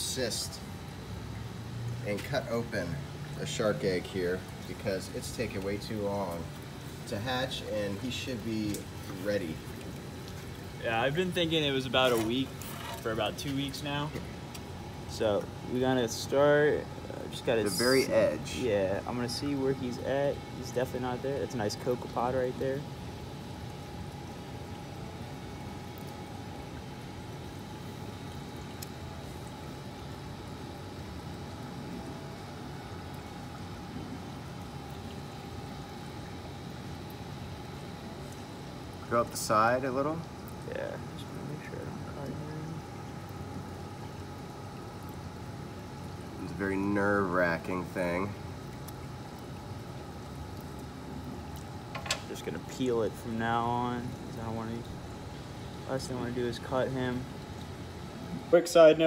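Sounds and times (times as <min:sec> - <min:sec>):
faint pump hum: 0:00.0 - 0:59.0
water circulating: 0:00.0 - 0:59.0.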